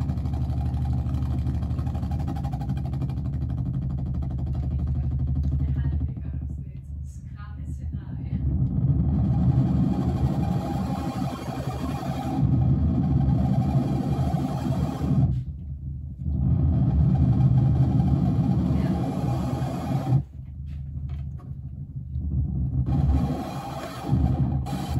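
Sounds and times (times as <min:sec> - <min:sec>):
distorted synthesizer rumble: 0:00.0 - 0:24.9.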